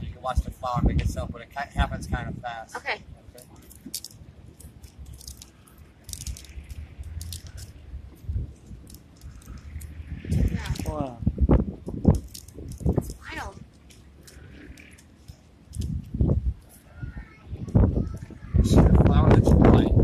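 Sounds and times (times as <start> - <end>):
palm leaves crackling and rustling: 3.3 - 16.9.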